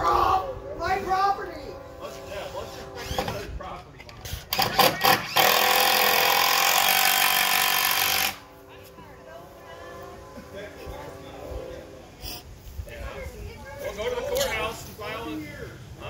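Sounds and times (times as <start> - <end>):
power tool running: 4.5 - 8.5.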